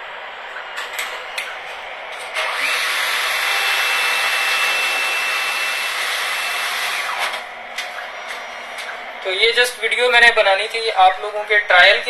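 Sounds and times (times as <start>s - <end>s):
cash dispenser whirring: 0.0s - 9.3s
faint steady whine: 0.0s - 12.0s.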